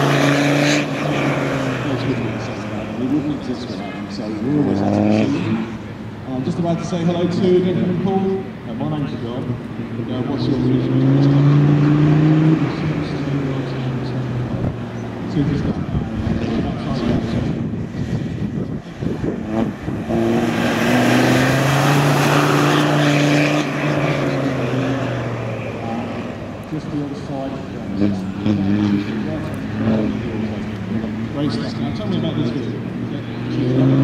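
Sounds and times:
diesel engine revving: 0:00.0 - 0:09.2, 0:09.8 - 0:34.0.

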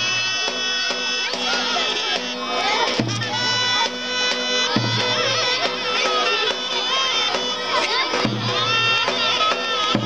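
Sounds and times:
children shouting and cheering: 0:00.0 - 0:10.0
drum strokes: 0:00.0 - 0:10.0
wind instrument melody: 0:00.0 - 0:10.0.

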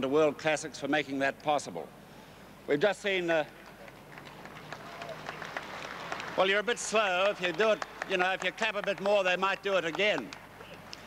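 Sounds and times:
thin applause: 0:03.6 - 0:11.0.

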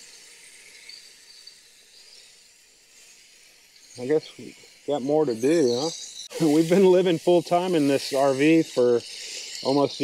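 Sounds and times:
hiss of water spraying: 0:00.0 - 0:10.0.

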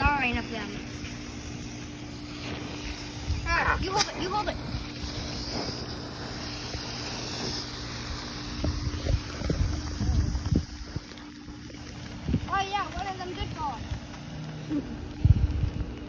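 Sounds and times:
wind buffeting microphone: 0:02.5 - 0:16.0.

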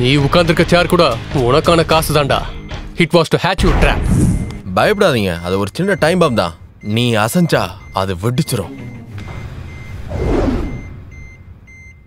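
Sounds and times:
thin electronic beeping: 0:04.2 - 0:12.0.

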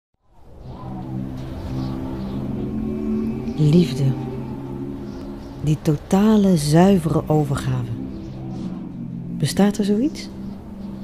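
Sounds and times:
chamber choir holding a chord: 0:00.4 - 0:11.0
low rumble: 0:00.4 - 0:11.0.

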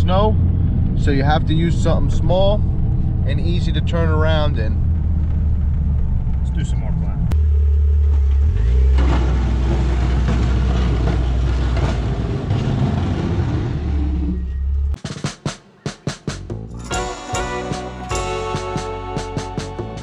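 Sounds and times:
engine and road drone: 0:00.0 - 0:15.0
music with beats and guitar: 0:15.1 - 0:20.0.

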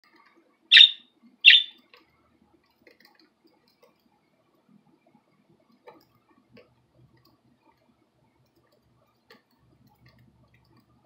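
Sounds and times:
budgerigar chirps: 0:00.7 - 0:01.8.

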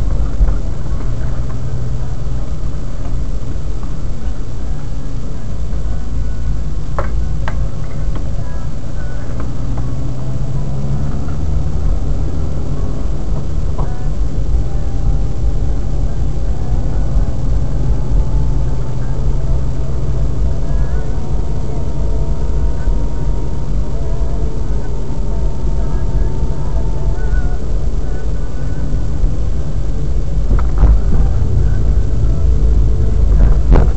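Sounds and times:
car engine and tyres on wet road: 0:00.0 - 0:33.9.

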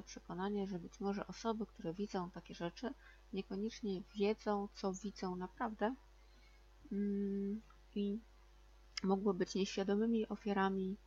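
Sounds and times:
woman humming hesitation sound: 0:06.9 - 0:08.2.

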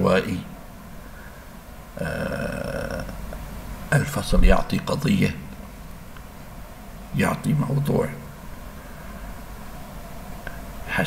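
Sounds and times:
man's drawn-out hesitation sound: 0:02.0 - 0:03.3, 0:03.9 - 0:05.5.

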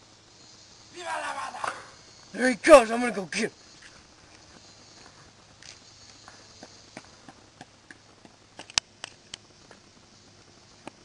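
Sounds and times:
footsteps on grass and pavement: 0:02.9 - 0:11.0.

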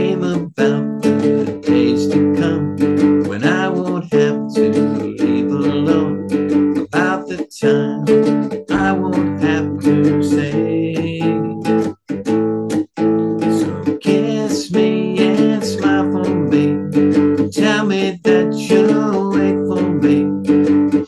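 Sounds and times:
cigar box guitar strummed: 0:00.0 - 0:21.0.

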